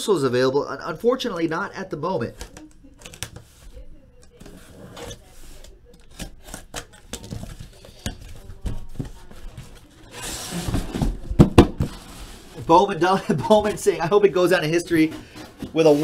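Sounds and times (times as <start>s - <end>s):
cardboard scraping and sliding: 8.4s - 12.9s, 14.8s - 16.0s
cardboard box thumps: 10.6s - 12.1s.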